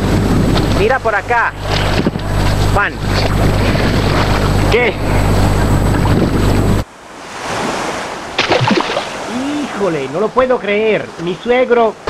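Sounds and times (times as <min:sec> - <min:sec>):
motor hum: 0:00.0 - 0:06.9
wind noise on microphone: 0:00.0 - 0:06.9
water rushing: 0:00.0 - 0:12.0
splashing into water: 0:07.5 - 0:09.6.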